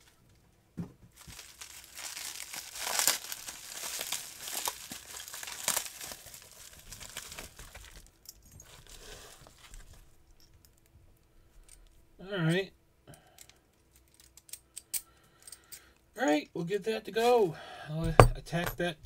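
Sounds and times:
bubble wrap crinkling and crackling: 1.1s - 10.1s.

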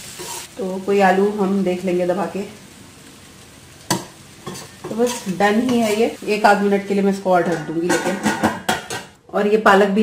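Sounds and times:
metal spoon stirring in pan: 0.0s - 0.6s, 3.8s - 9.2s
faint sizzle: 0.0s - 8.2s.

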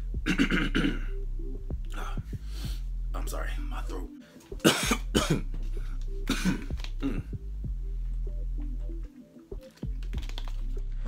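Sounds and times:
man coughing: 0.2s - 1.1s, 4.6s - 5.6s, 6.3s - 7.3s.

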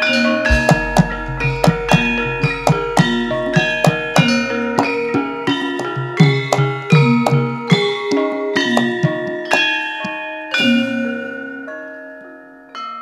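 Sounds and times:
metallophones ringing: 0.0s - 11.7s
large gong struck: 0.5s - 5.1s
hand drum strokes: 0.5s - 10.2s.

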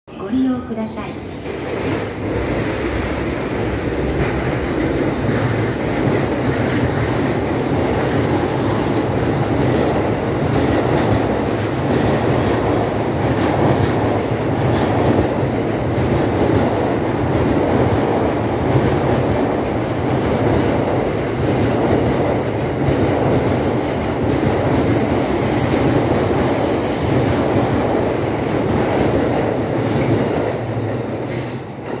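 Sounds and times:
train wheels rumbling on rail: 1.2s - 32.0s.

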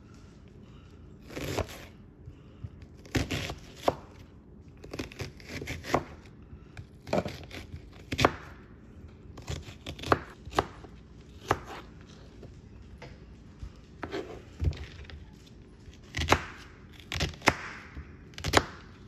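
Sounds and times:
knife cutting onion: 1.2s - 2.0s, 3.0s - 8.7s, 9.4s - 12.0s, 14.0s - 15.1s, 15.9s - 19.0s.

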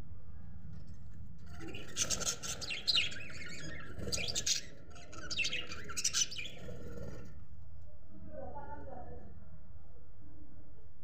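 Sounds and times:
budgerigars chirping: 1.7s - 7.0s.

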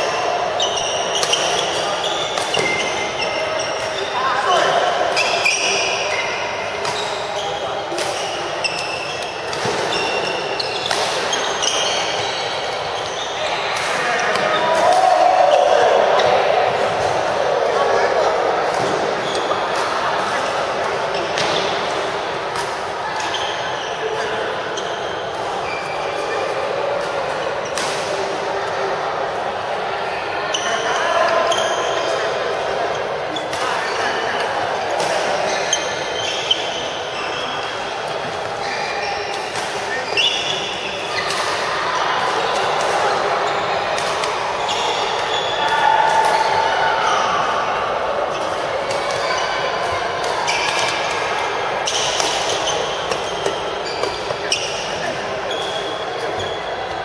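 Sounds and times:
people talking: 0.0s - 57.0s
shoes squeaking on court: 0.5s - 14.7s, 23.1s - 27.9s, 32.9s - 41.6s, 42.3s - 46.0s, 48.3s - 57.0s
racket hitting shuttlecock: 7.9s - 12.3s, 49.8s - 51.2s, 51.9s - 55.0s.

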